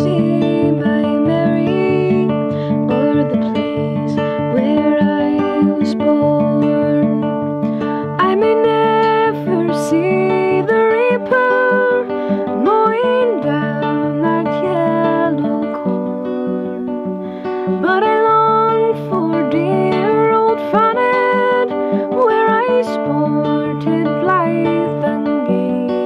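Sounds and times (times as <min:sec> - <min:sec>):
acoustic guitar: 0:00.0 - 0:26.0
woman singing: 0:00.0 - 0:26.0.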